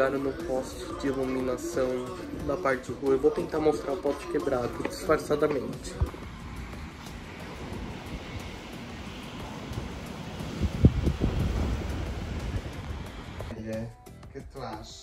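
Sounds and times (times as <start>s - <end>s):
outdoor rushing noise: 0.0s - 13.5s
background music: 0.0s - 15.0s
wind buffeting microphone: 4.5s - 13.5s.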